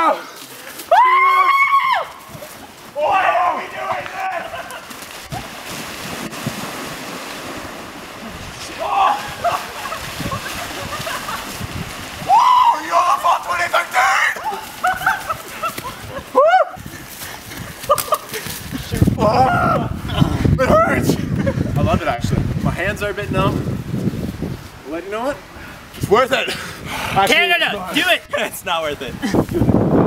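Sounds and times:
people shouting and yelling: 0:00.0 - 0:05.5, 0:08.6 - 0:10.6, 0:12.2 - 0:16.9, 0:19.1 - 0:21.2
people splashing through water: 0:00.0 - 0:20.4.

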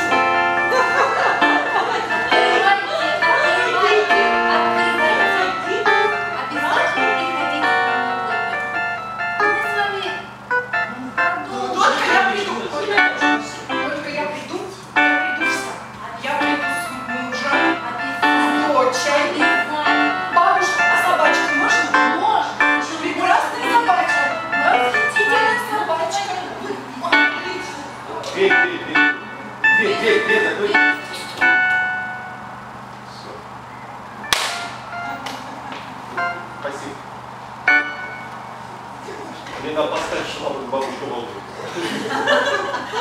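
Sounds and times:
keyboard playing slow chords: 0:00.0 - 0:39.1
sharp crack: 0:34.3 - 0:34.8.

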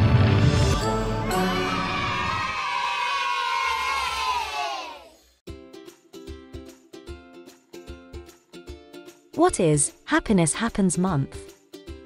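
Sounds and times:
group of voices cheering: 0:01.0 - 0:05.2.

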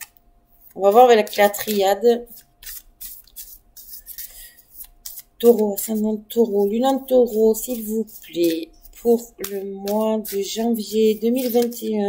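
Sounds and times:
cards being shuffled: 0:00.7 - 0:12.0.

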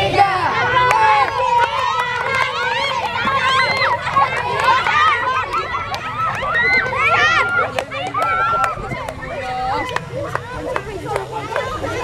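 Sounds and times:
children shouting: 0:00.0 - 0:12.0.

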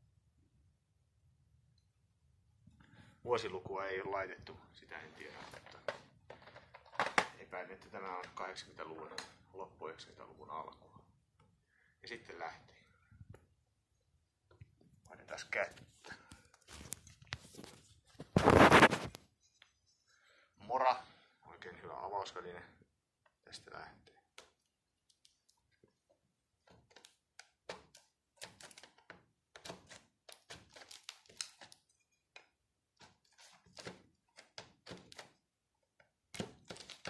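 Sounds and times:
knife scraping plastic wrap: 0:18.3 - 0:19.2, 0:27.7 - 0:32.1, 0:33.0 - 0:35.3, 0:36.4 - 0:37.0.

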